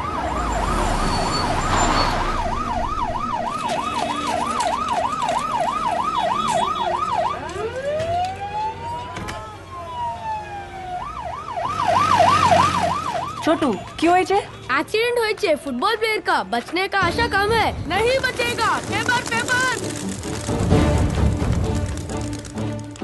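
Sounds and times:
ambulance siren: 0.0s - 14.7s.

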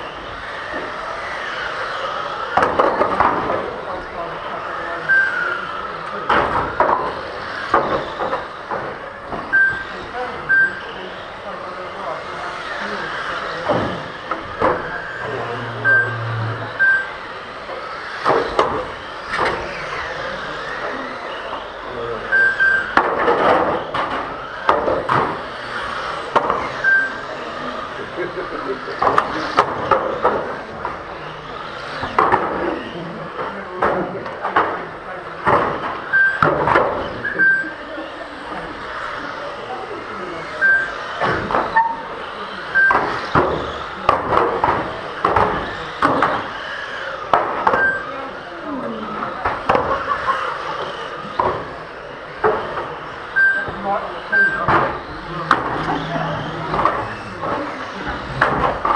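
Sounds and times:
indistinct voices: 0.0s - 58.9s
toy cars hitting barrier boards: 0.3s - 15.2s, 17.0s - 37.7s, 38.4s - 58.9s
lap timer beeps: 9.5s - 9.8s, 15.8s - 17.2s, 47.8s - 48.1s, 53.4s - 53.8s.

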